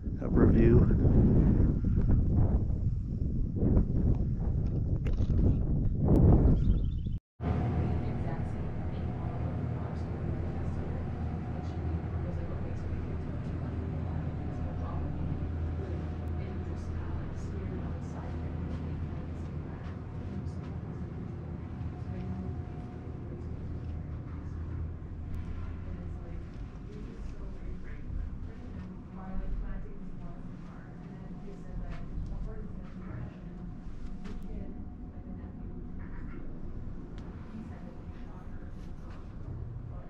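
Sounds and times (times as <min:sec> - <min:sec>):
low steady hum: 0:00.0 - 0:40.0
faint indistinct voices: 0:07.4 - 0:40.0.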